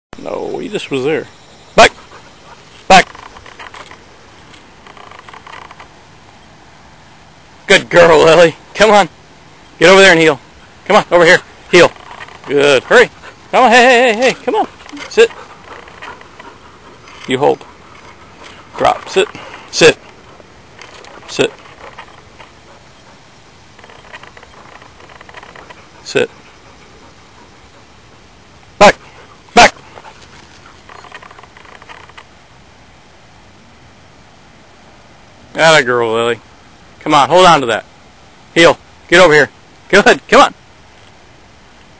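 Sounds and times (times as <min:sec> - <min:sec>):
faint rustling: 0:01.8 - 0:07.3, 0:09.4 - 0:32.4.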